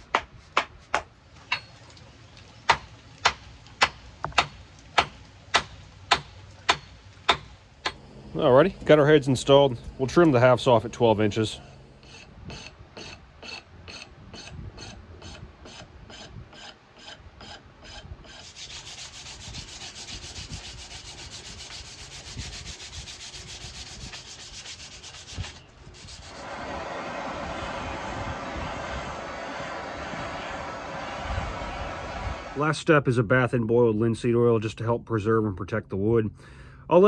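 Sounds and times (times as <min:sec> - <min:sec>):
hand saw cutting wood: 0:12.0 - 0:26.4.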